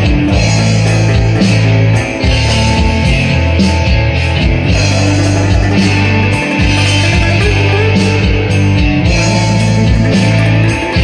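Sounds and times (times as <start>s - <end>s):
electric guitar rock lead: 0.0s - 11.0s
rock backing track: 0.0s - 11.0s.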